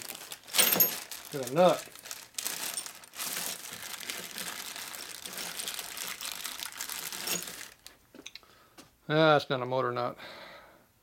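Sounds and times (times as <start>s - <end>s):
plastic bag crinkling: 0.0s - 8.0s.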